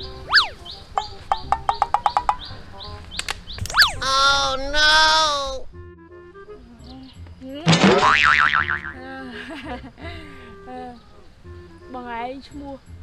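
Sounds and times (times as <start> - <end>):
steady high chirping: 0.0 - 2.6
cartoon whistle gliding up and down: 0.2 - 0.7, 3.7 - 4.7
rapid ticks: 1.0 - 3.8.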